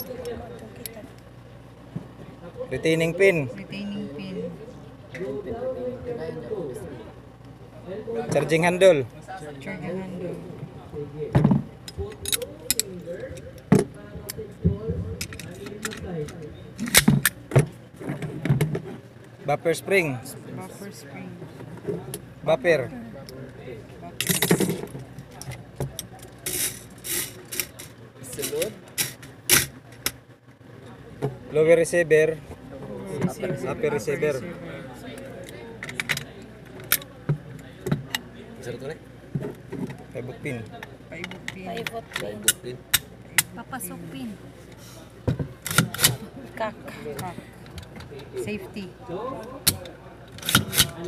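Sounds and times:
metal rifle parts clinking on wood: 11.9 - 13.5.

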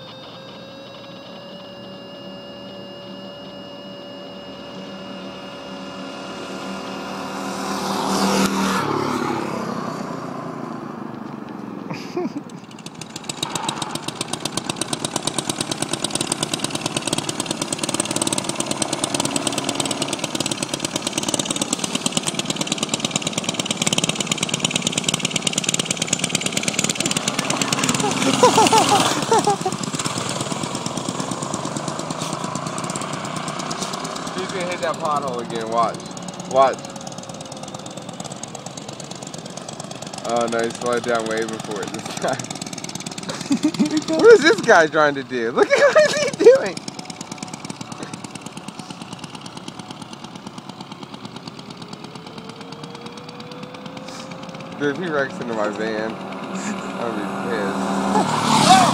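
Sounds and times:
minibike engines running: 0.0 - 10.3, 11.0 - 58.9
person laughing: 11.8 - 12.7, 27.0 - 29.9, 43.2 - 46.8, 47.9 - 49.0, 56.5 - 57.4, 58.0 - 58.9.

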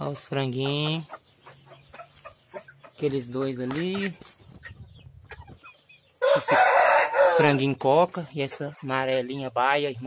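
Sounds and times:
rooster crowing: 6.2 - 7.6.

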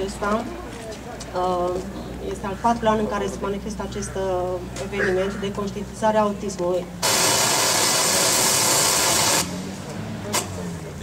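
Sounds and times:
loud steady hiss: 7.0 - 10.5.

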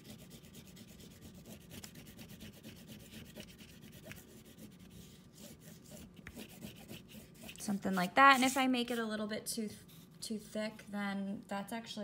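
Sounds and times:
oil pastel scratching on paper: 0.0 - 9.1.

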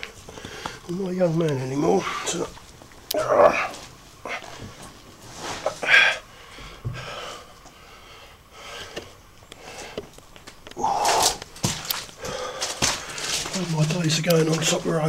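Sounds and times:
man breathing heavily: 0.0 - 0.9, 5.6 - 13.6.

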